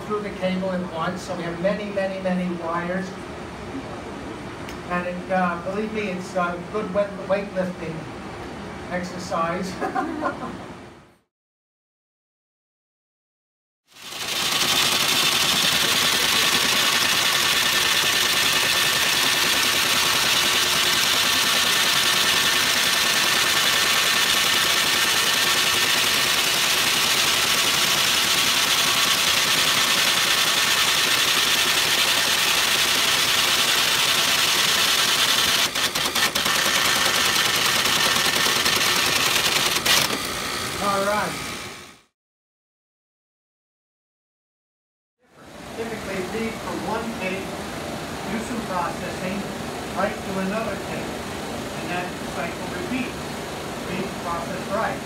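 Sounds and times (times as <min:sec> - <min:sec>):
line printer mechanical chatter: 0:13.9 - 0:41.6.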